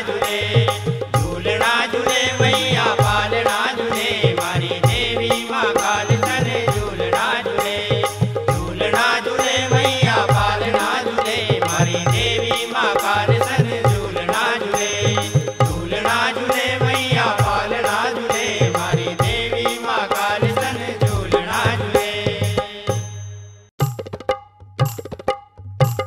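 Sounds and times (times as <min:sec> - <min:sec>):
steady drum beat: 0:00.0 - 0:23.1, 0:23.8 - 0:26.0.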